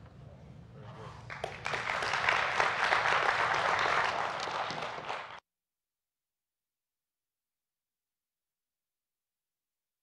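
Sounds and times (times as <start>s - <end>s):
audience applauding: 1.3s - 5.4s.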